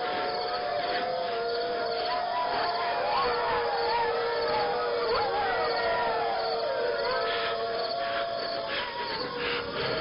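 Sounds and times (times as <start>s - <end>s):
wolves howling: 0.0s - 10.0s.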